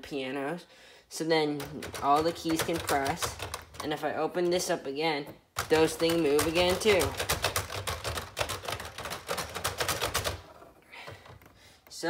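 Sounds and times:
plastic piano keys clattering: 0:01.6 - 0:04.0, 0:05.6 - 0:11.6.

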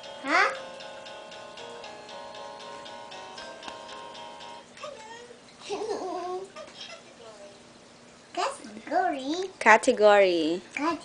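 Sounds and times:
even ticking beat: 0:00.0 - 0:04.8.

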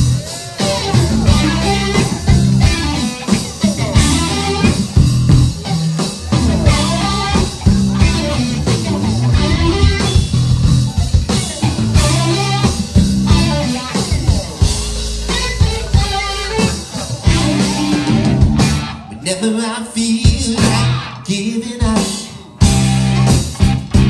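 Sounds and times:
drum kit: 0:00.0 - 0:19.1, 0:20.1 - 0:24.0
bass guitar: 0:00.0 - 0:24.0
electric guitar: 0:00.0 - 0:24.0.

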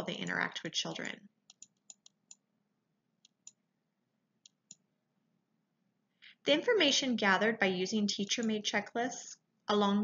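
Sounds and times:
computer control clicks: 0:08.2 - 0:08.6.

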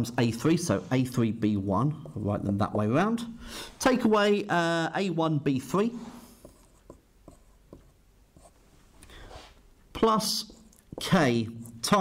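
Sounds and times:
marker writing on whiteboard: 0:01.9 - 0:02.8, 0:05.7 - 0:08.6, 0:09.3 - 0:12.0.

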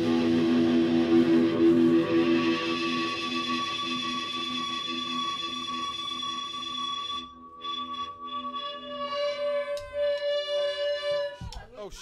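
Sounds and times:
electric guitar held tone: 0:00.0 - 0:11.3.

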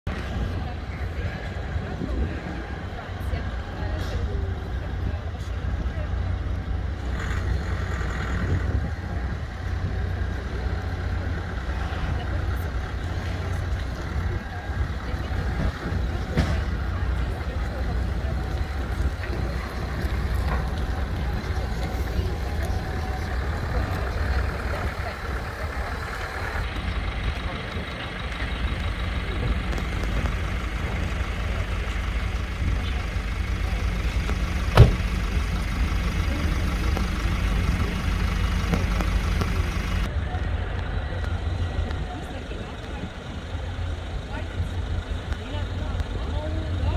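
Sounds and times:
pickup truck engine running: 0:00.1 - 0:46.9
steady low rumble: 0:00.1 - 0:46.9.

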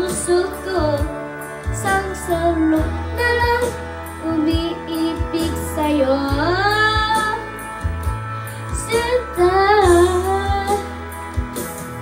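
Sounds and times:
child singing into microphone: 0:00.0 - 0:01.1, 0:01.8 - 0:07.5, 0:08.8 - 0:10.9
backing music with low beat: 0:00.0 - 0:12.0.

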